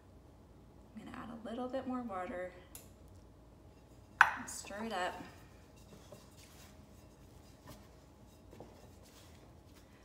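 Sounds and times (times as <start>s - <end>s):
spatula scraping dough in bowl: 5.7s - 9.7s.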